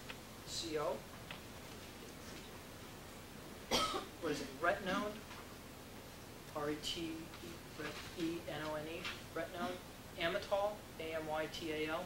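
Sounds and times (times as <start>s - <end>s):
person coughing: 3.7s - 4.2s, 9.6s - 9.8s.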